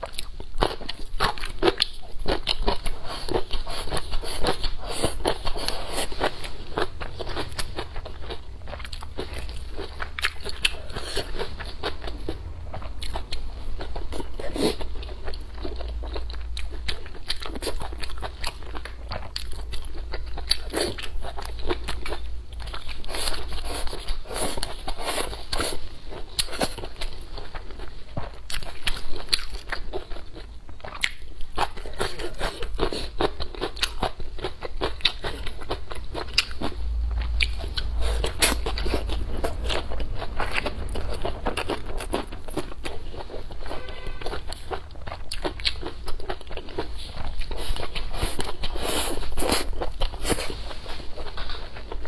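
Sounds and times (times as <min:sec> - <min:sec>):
person chewing crunchy food: 0:00.0 - 0:52.0.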